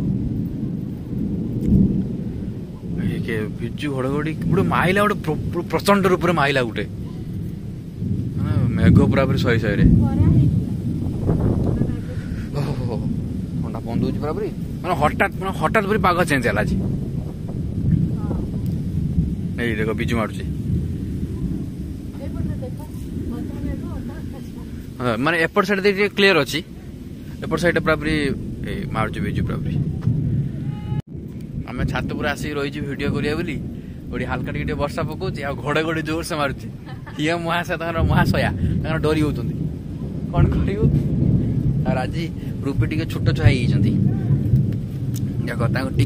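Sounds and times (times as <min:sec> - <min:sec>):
thunder rumbling: 0:00.0 - 0:46.0.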